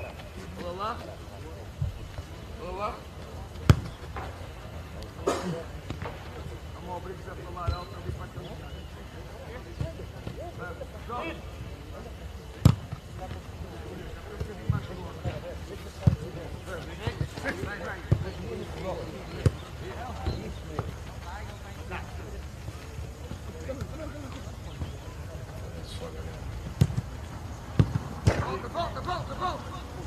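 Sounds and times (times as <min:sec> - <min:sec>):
football kick thuds: 0:27.7 - 0:28.6.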